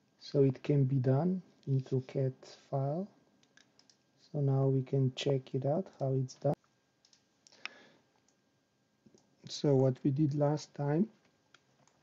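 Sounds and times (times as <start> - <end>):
computer mouse clicks: 3.4 - 4.0, 7.0 - 8.4.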